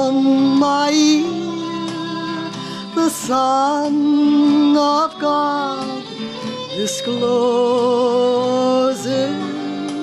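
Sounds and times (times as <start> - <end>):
woman singing a hymn: 0.0 - 1.9, 2.9 - 6.1, 6.7 - 10.0
acoustic guitar: 0.0 - 10.0.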